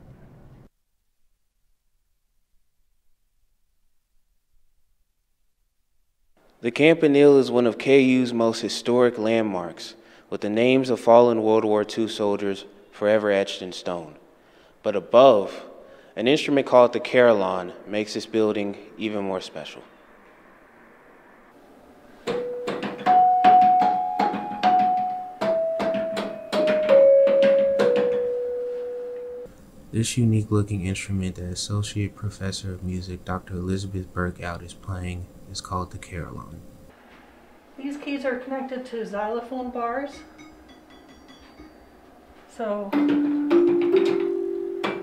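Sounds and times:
carillon bells melody: 22.3 - 29.5, 43.1 - 45.0.

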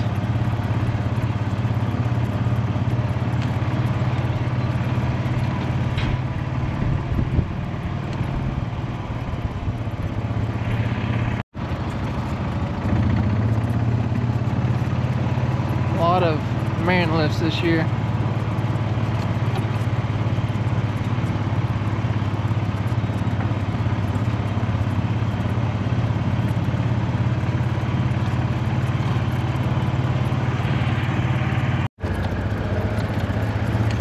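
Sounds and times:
vehicle engine running: 0.0 - 34.0.

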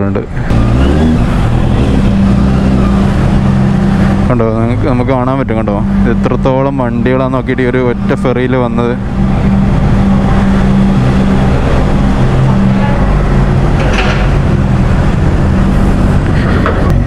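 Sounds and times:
motorcycle engine running at low revs: 0.5 - 17.0.

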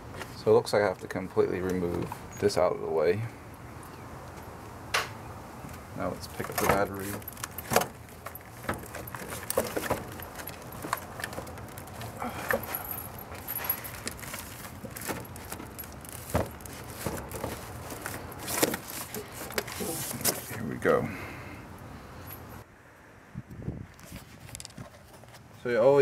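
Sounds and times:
plastic battery case knocking and scraping: 6.4 - 12.7, 13.9 - 20.5
keys jangling: 6.4 - 19.5.

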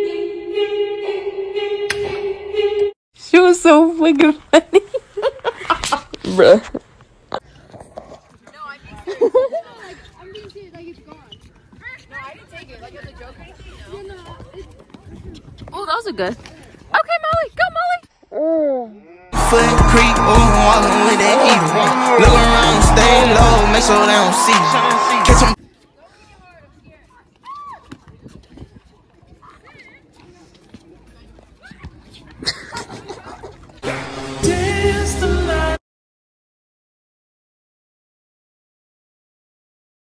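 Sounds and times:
players shouting: 19.4 - 25.6.

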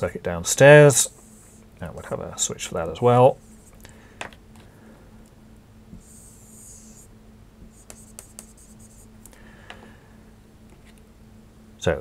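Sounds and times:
marker scratching on whiteboard: 6.0 - 9.1.

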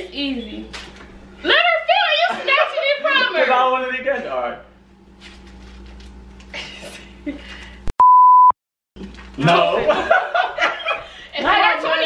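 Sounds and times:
high censor bleep: 8.0 - 8.6.

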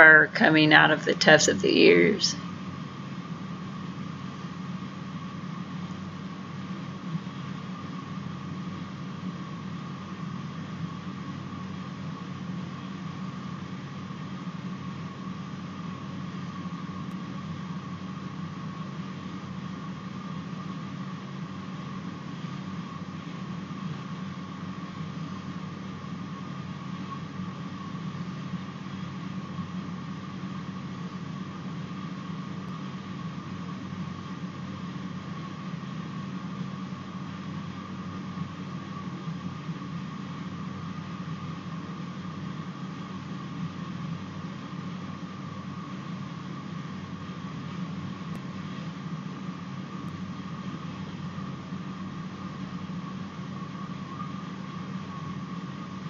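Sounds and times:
low hum and hiss: 0.0 - 56.0
faint high steady tone: 53.4 - 56.0.

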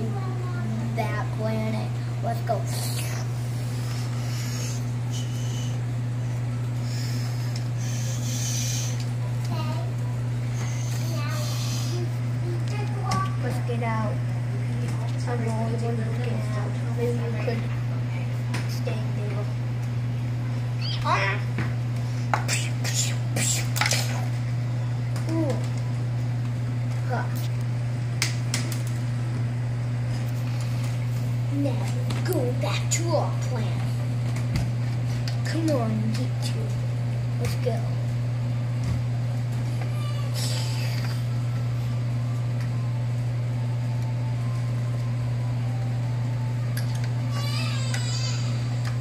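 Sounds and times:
low hum: 0.0 - 49.0
child hissing bursts: 4.0 - 5.8, 6.8 - 9.0, 10.6 - 12.1, 22.5 - 24.2
child meow-like cry: 39.8 - 41.1, 47.3 - 48.8.

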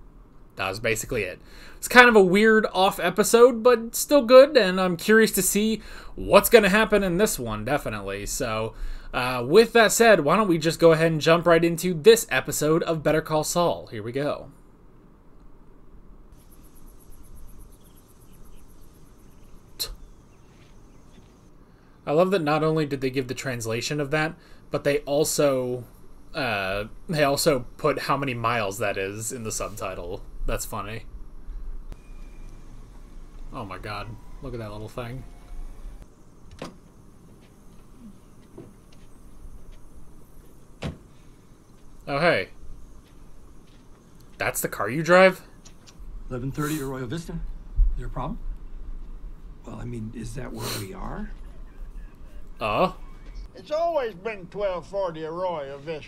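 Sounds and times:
faint background noise: 0.0 - 56.0
faint low rumble: 0.0 - 56.0
insects trilling: 16.3 - 56.0.

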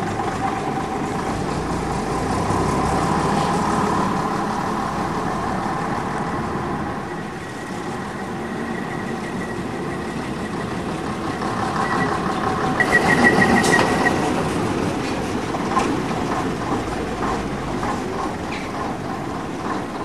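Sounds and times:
bus engine running: 0.0 - 20.0.

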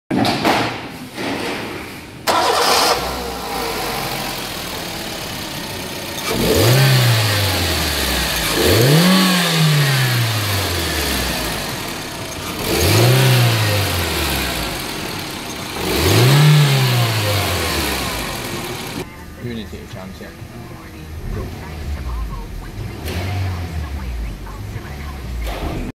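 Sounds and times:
car engine starting and idling: 2.2 - 25.9
engine revving: 2.3 - 19.1, 20.8 - 25.9.

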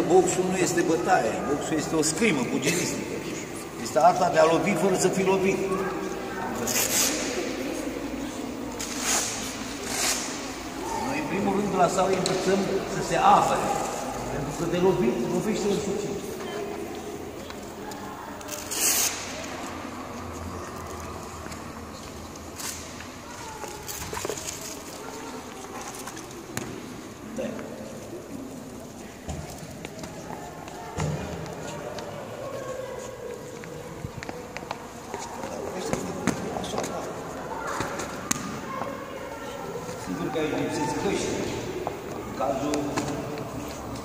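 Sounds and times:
echoing voices: 0.0 - 44.0.

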